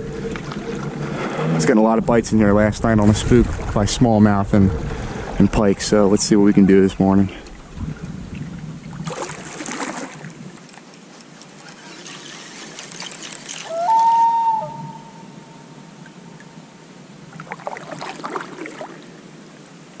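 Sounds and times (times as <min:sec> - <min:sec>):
water lapping against hull: 0:00.0 - 0:15.0, 0:17.2 - 0:19.7
clear tone rising in pitch: 0:13.7 - 0:16.6.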